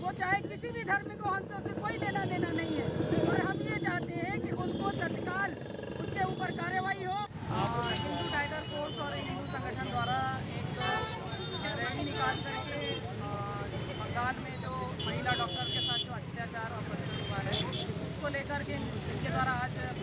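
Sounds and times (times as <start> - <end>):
woman talking: 0.0 - 7.3
road traffic noise: 0.0 - 20.0.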